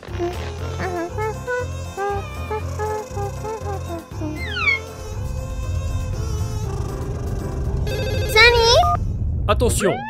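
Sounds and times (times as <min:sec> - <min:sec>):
continuous low rumble: 0:00.0 - 0:10.0
child's voice: 0:00.1 - 0:04.9, 0:08.3 - 0:08.9.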